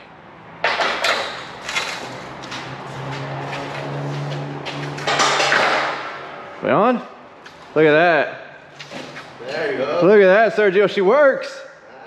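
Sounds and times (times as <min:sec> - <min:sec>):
metal gate scraping and knocking: 0:04.7 - 0:06.4.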